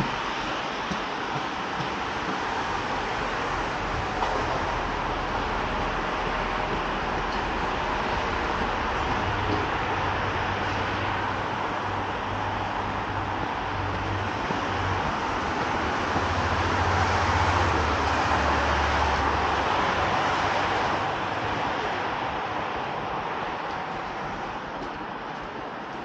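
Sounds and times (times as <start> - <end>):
low engine drone: 0.0 - 26.0
road traffic noise: 0.0 - 26.0.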